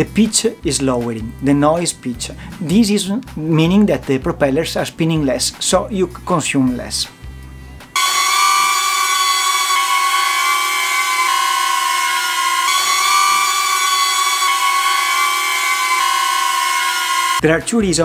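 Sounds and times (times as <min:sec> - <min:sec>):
drone propellers whining: 0:08.0 - 0:17.4.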